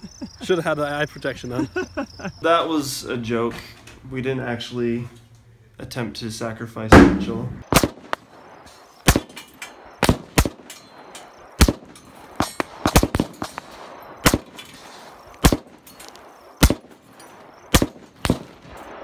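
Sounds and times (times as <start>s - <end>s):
gunshots hitting glass: 7.0s - 8.2s, 9.0s - 14.8s, 15.4s - 18.8s.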